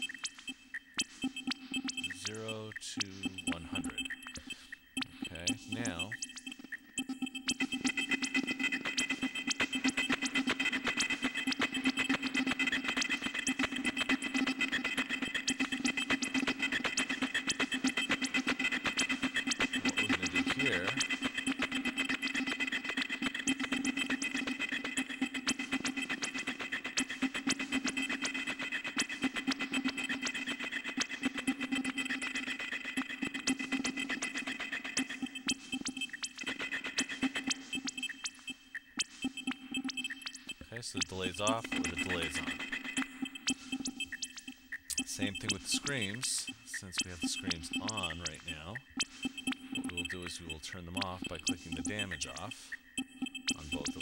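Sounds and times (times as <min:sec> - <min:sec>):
glitchy electronic drum pattern: 0:00.0 - 0:54.0.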